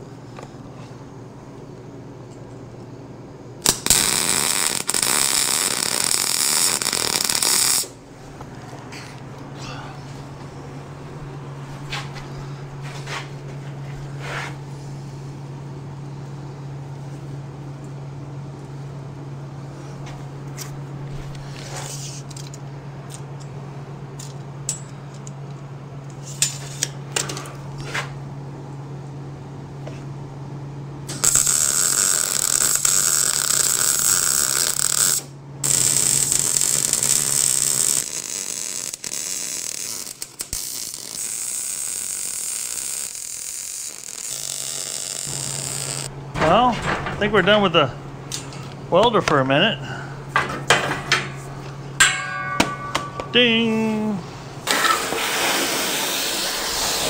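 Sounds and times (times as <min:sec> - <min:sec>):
welder low hum: 0:00.0 - 0:24.9, 0:30.2 - 0:57.0
arc welding crackling hiss: 0:03.6 - 0:08.0, 0:31.1 - 0:46.1, 0:54.6 - 0:57.0
clicks and knocks: 0:46.3 - 0:47.4.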